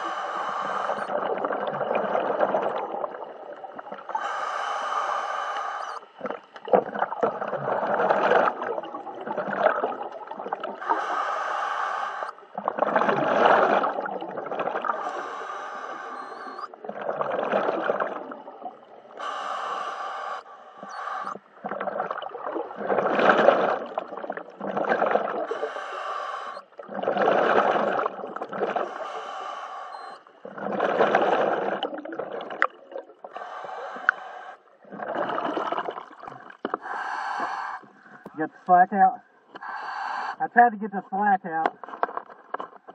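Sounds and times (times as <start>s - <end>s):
hissing regulator inhalations: 0.0s - 1.1s, 4.1s - 6.1s, 10.8s - 12.4s, 14.8s - 16.8s, 19.1s - 21.6s, 25.4s - 26.8s, 28.6s - 30.3s, 33.2s - 35.9s, 36.6s - 38.7s, 39.5s - 40.6s
bubbling exhalations: 0.0s - 4.3s, 6.2s - 11.2s, 12.5s - 19.9s, 20.8s - 29.2s, 29.9s - 34.2s, 34.8s - 38.6s.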